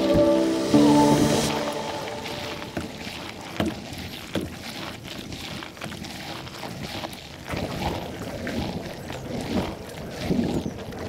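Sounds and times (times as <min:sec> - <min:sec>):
paddle strokes splashing in water: 0:00.0 - 0:11.0.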